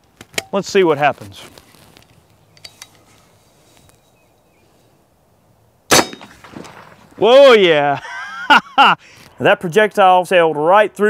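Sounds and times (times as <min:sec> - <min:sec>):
air rifle shot with ringing tail: 0:05.9 - 0:07.0.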